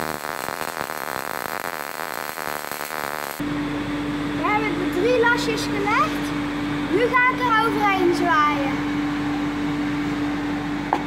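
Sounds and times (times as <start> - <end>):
welding arc crackling: 0.0 - 3.4
steady hum: 0.0 - 11.0.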